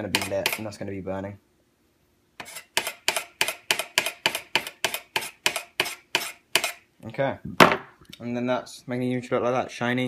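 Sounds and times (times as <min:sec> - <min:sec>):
knife scraping metal ribbon: 0:02.4 - 0:06.8.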